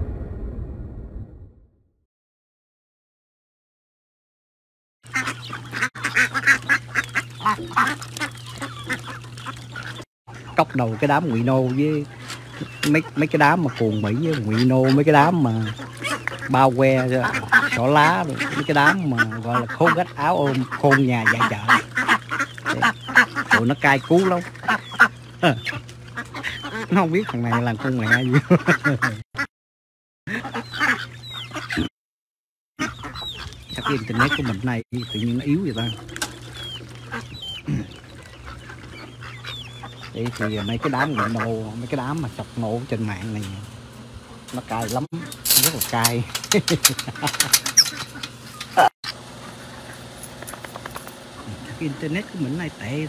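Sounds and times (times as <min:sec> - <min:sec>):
ducks quacking: 0:05.0 - 0:29.5, 0:30.3 - 0:31.9, 0:32.8 - 0:53.0
steady low hum: 0:05.1 - 0:29.2, 0:32.9 - 0:53.0.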